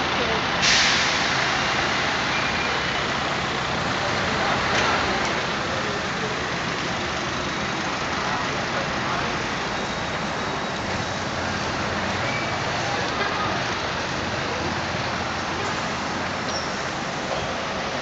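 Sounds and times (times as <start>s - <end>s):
bus engine: 0.0s - 18.0s
car engines in traffic: 0.0s - 18.0s.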